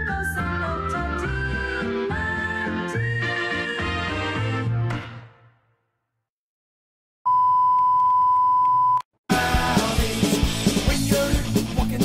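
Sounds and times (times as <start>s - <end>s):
steady test tone beep: 7.3s - 9.1s.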